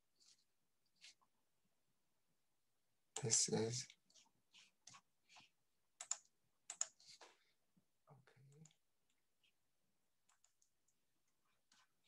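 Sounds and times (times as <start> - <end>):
computer keyboard and mouse clicks: 6.0 - 7.3, 10.3 - 10.7.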